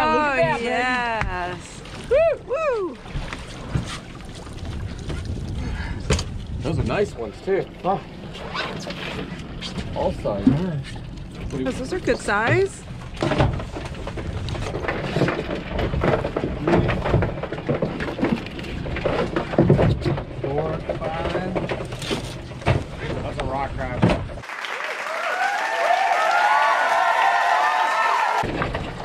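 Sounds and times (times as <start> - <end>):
voices: 0.0 - 3.0.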